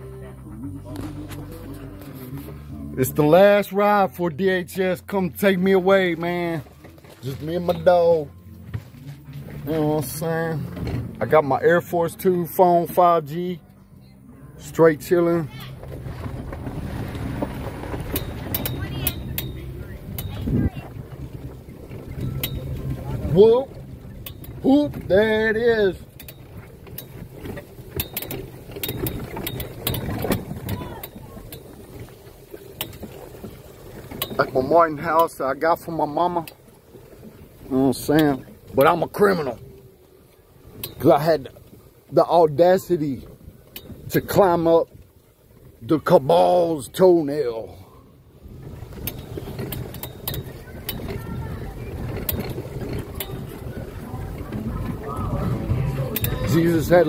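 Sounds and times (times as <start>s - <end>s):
golf cart rumbling: 0.0s - 57.0s
small vehicle engine humming: 0.0s - 57.0s
sharp clicks and rattles: 14.6s - 47.5s, 48.4s - 57.0s.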